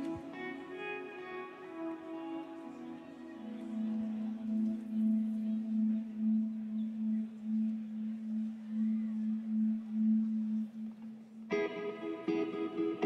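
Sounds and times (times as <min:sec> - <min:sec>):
low wobbling held tone: 0:04.8 - 0:11.5.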